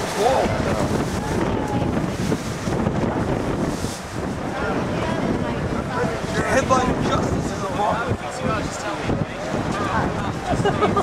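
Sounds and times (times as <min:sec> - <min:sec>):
faint voices talking: 0:00.0 - 0:11.0
wind buffeting microphone: 0:00.0 - 0:11.0.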